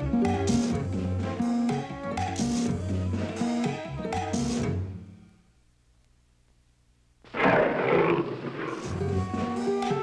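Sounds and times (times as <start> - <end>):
music: 0.0 - 5.8, 8.5 - 10.0
rasping dragon roar: 7.3 - 9.1.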